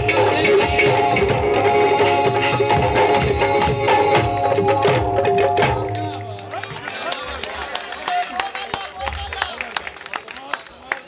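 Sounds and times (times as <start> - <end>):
folk song with percussion: 0.0 - 8.1
crowd voices: 4.6 - 11.0.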